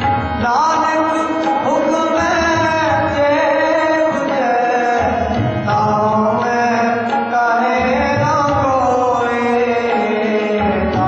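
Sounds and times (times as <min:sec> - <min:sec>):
harmonium: 0:00.0 - 0:11.0
tabla: 0:00.0 - 0:11.0.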